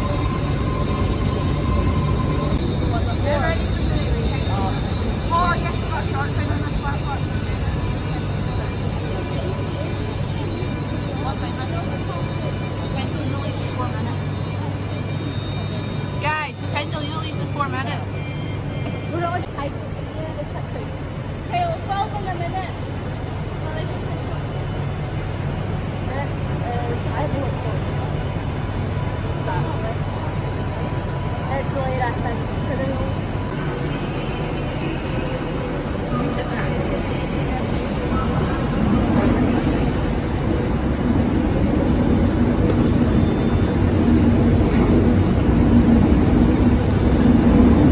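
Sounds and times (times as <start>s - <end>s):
indistinct voices: 0.0s - 47.9s
low hum from trains: 0.0s - 47.9s.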